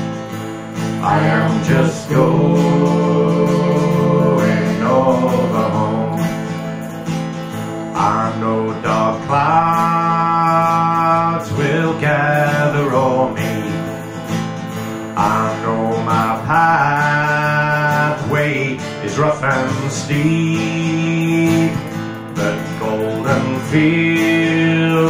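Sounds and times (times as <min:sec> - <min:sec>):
acoustic guitar: 0:00.0 - 0:25.0.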